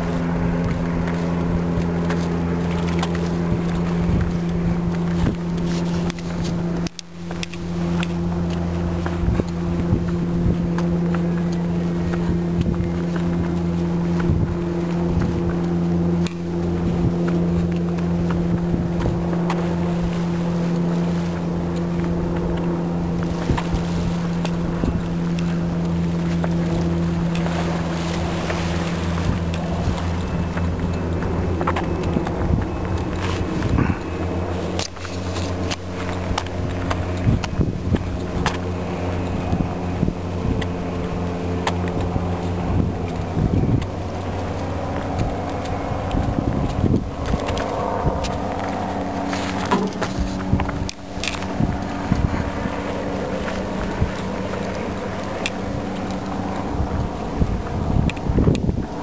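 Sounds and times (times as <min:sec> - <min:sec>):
engine humming: 0:00.0 - 0:59.0
water: 0:00.0 - 0:59.0
wind: 0:00.0 - 0:59.0.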